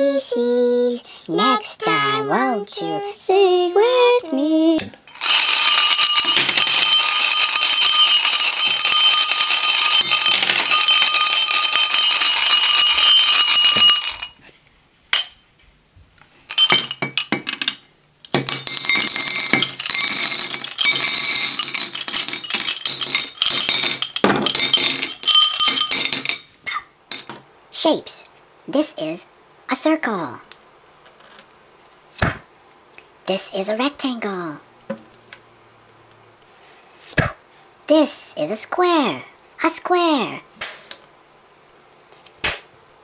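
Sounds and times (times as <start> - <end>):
candies rattling in glasses: 5.1 - 14.4, 16.5 - 26.4
glasses knocking and ringing: 5.1 - 14.4, 15.1 - 15.4, 16.5 - 27.4.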